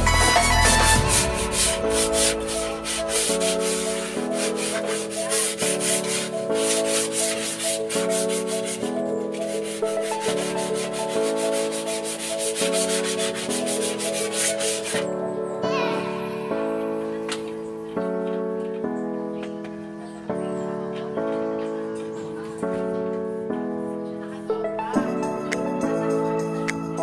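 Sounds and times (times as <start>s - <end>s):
gloved hand scrubbing glass: 0.0s - 15.1s
piano-like background music: 0.0s - 27.0s.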